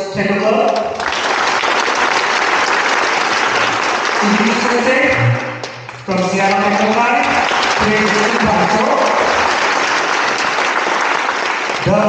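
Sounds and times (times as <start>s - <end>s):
person speaking: 0.0s - 1.0s, 4.2s - 9.6s
audience applauding: 0.8s - 12.0s.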